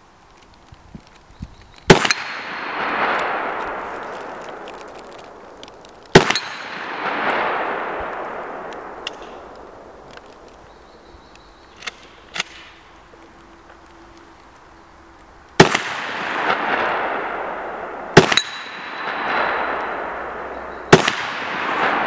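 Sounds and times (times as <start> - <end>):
gunshots with rolling echo: 1.9 - 10.5, 15.6 - 22.0.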